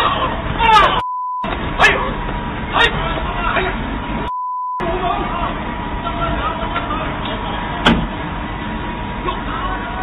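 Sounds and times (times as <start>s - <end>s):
people's voices: 0.0s - 10.0s
street traffic noise: 0.0s - 10.0s.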